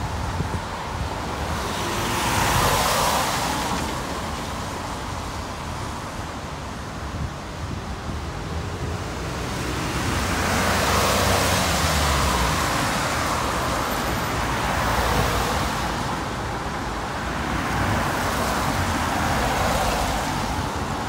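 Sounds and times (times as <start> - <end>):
tyres on wet road: 0.0 - 21.0.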